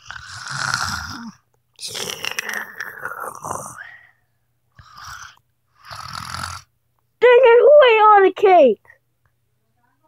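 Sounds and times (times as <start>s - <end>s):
person pretending to snore: 0.0s - 4.0s, 4.8s - 6.7s.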